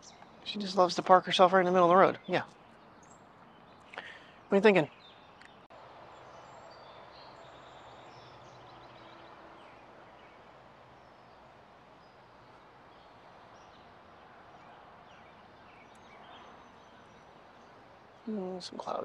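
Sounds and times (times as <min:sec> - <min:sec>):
distant birds chirping: 0:00.0 - 0:19.0.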